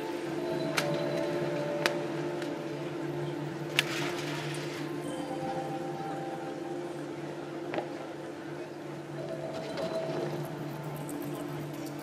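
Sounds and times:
low hum of held tones: 0.0s - 12.0s.

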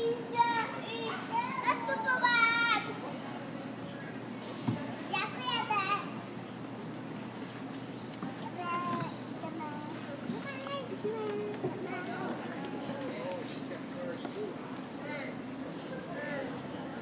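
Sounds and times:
children calling out and squealing: 0.0s - 3.0s, 8.4s - 13.5s
store background hum: 0.0s - 17.0s.

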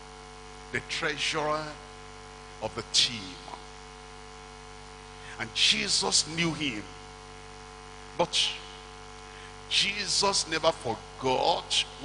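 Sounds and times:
electrical mains hum: 0.0s - 12.0s
person speaking: 5.3s - 6.9s, 9.7s - 12.0s.

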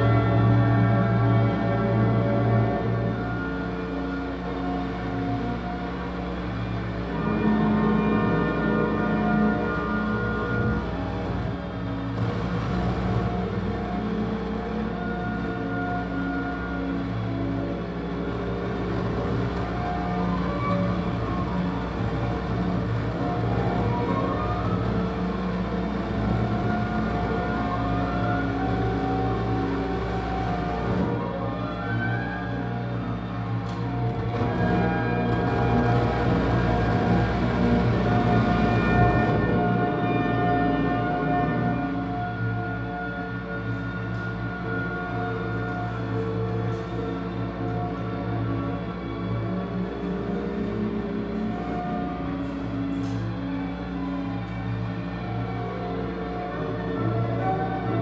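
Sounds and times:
electronic drone music: 0.0s - 58.0s.

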